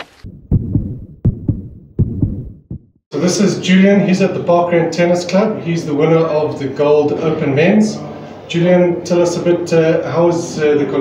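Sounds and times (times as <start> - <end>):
heartbeat thumps: 0.0 - 3.0.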